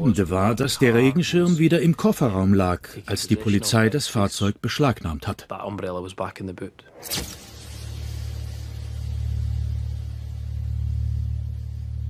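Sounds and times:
person speaking: 0:00.0 - 0:06.8
short sharp hit: 0:06.9 - 0:10.0
low steady drone: 0:07.5 - 0:12.0.

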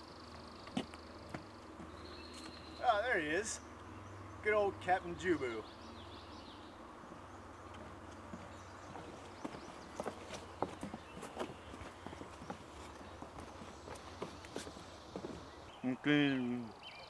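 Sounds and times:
footsteps on wooden boardwalk: 0:00.4 - 0:02.6, 0:07.7 - 0:15.7.

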